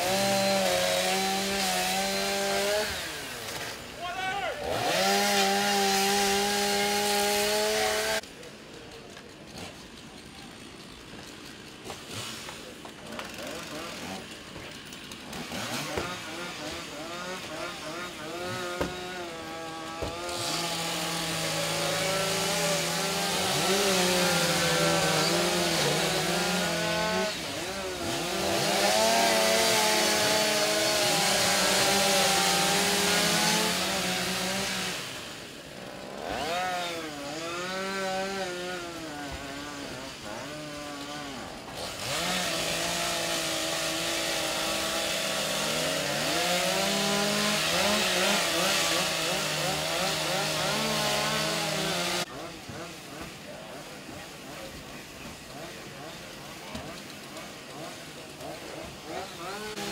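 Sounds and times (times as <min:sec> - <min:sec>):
chainsaw cutting: 0:00.0 - 0:59.9.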